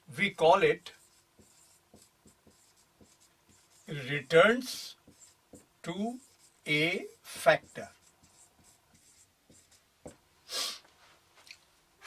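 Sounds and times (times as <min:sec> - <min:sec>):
marker writing on whiteboard: 0:00.3 - 0:10.2
short breathy hiss: 0:10.4 - 0:10.9.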